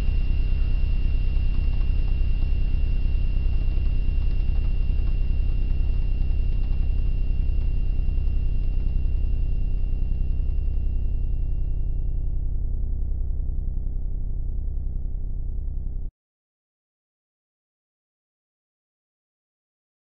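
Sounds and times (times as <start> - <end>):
loud pulsing low rumble: 0.0 - 16.1.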